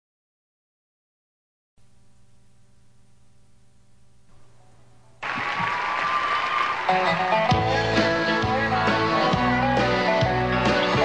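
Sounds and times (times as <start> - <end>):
audience applauding: 5.2 - 8.5
band playing country song: 6.6 - 11.0.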